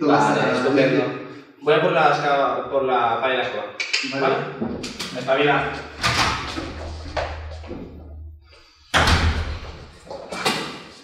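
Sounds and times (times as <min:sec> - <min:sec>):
loud thump in large room: 0:08.9 - 0:10.8.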